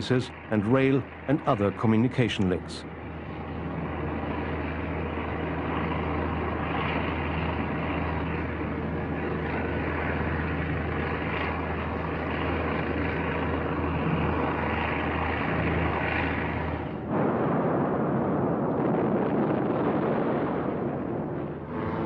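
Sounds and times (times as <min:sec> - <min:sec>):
propeller aircraft engines droning: 0:00.0 - 0:22.0.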